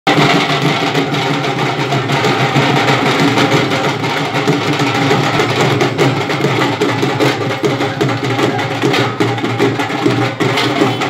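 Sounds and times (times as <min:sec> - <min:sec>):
procession band drumming: 0:00.1 - 0:11.0.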